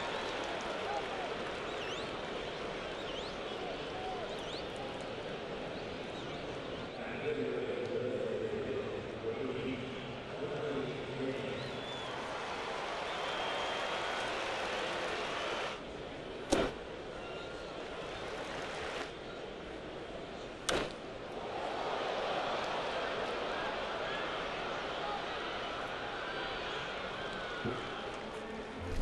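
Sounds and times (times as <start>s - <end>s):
ballpark crowd noise: 0.0s - 29.0s
bat cracking against ball: 20.7s - 21.0s.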